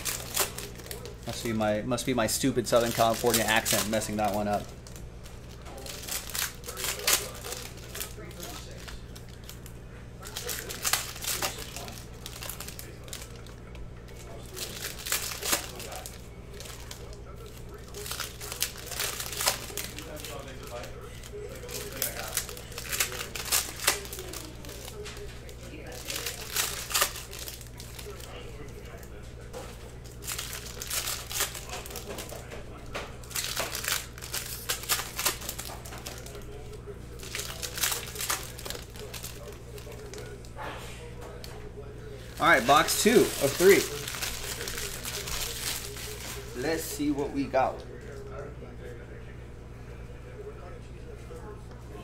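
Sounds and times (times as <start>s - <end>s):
cards and wrapper rustling: 0.0s - 29.1s, 29.8s - 40.4s, 42.1s - 47.9s.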